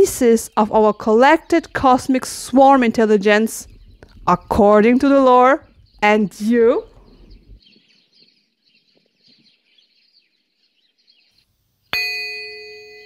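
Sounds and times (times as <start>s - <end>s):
bell-like chime: 12.0s - 13.0s.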